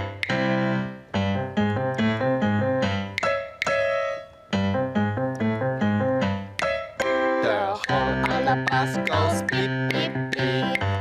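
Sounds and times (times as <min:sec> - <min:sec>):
electronic keyboard piano music: 0:00.0 - 0:11.0.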